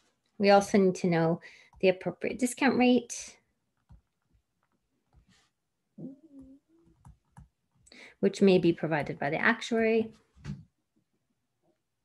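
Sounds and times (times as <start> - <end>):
stylus tapping on tablet screen: 3.7 - 5.4, 6.4 - 7.9
person humming: 6.0 - 7.0.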